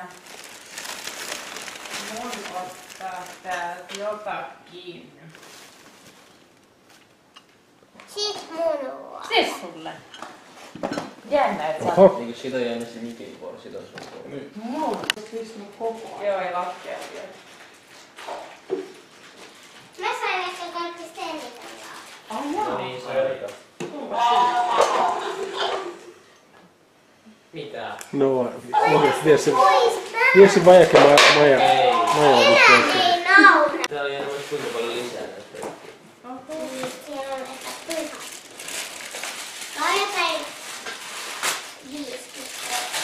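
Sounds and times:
child talking: 8.1 - 9.7, 20.0 - 22.9, 28.8 - 30.6, 31.8 - 33.9, 36.2 - 38.4, 39.7 - 40.6, 41.8 - 43.0.

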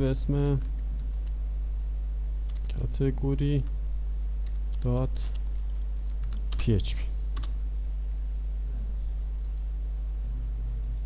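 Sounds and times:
steady low hum: 0.0 - 11.0
computer keyboard keystroke: 4.4 - 6.7, 7.4 - 7.6.

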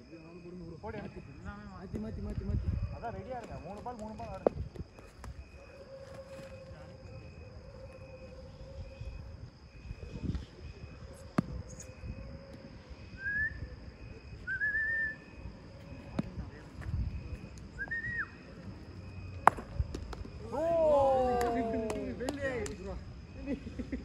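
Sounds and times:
short rising whistles: 12.9 - 15.5, 17.7 - 18.6
cricket bat striking ball: 19.4 - 20.4.

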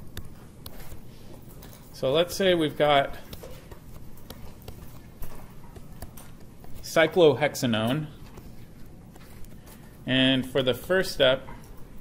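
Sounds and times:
stylus tapping on tablet screen: 3.2 - 6.8.

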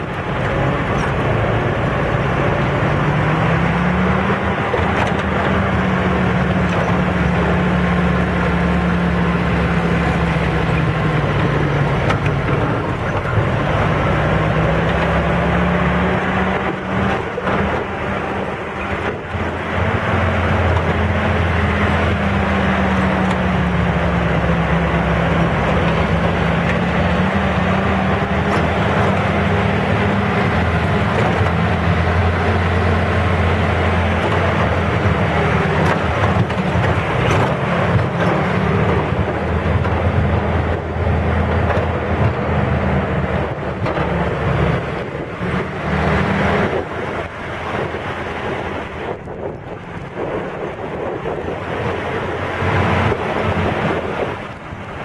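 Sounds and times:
off-road vehicle engine running: 0.0 - 55.0.

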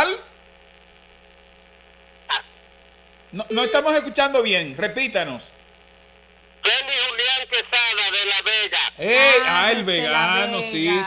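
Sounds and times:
steady low hum: 0.0 - 11.0
voice on phone line: 3.4 - 4.1, 6.6 - 11.0.

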